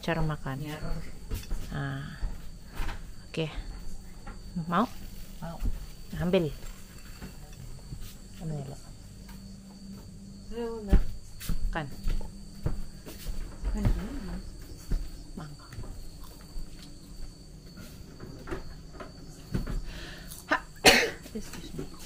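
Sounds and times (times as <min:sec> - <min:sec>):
low steady hum: 0:00.0 - 0:22.0
night insects droning: 0:00.0 - 0:22.0.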